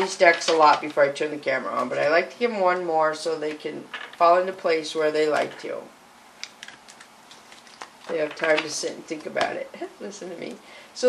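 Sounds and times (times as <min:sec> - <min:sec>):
cards shuffling: 0:06.4 - 0:09.4.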